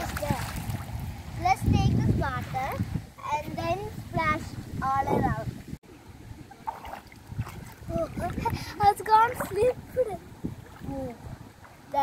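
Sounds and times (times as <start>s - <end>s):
water splashing around feet: 0.0s - 3.0s, 6.5s - 12.0s.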